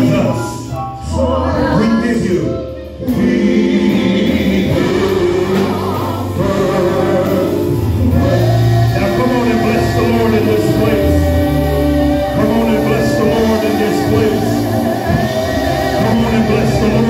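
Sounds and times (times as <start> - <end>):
band with drum kit: 0.0 - 17.0
sustained bass notes: 0.0 - 17.0
voices singing gospel: 0.0 - 17.0.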